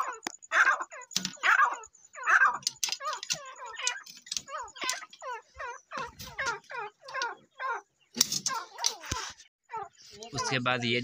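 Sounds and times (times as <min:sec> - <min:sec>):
francolins chirping: 0:00.0 - 0:11.0
wire-mesh pen rattling: 0:02.6 - 0:05.1.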